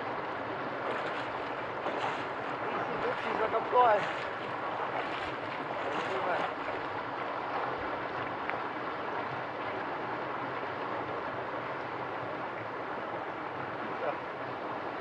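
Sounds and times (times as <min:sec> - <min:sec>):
stream water rushing: 0:00.0 - 0:15.0.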